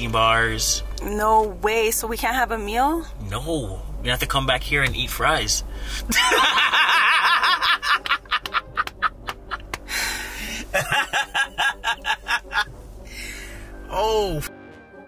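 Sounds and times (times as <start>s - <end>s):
background music: 0.0s - 15.0s
people laughing hard: 6.1s - 9.8s, 10.5s - 12.7s.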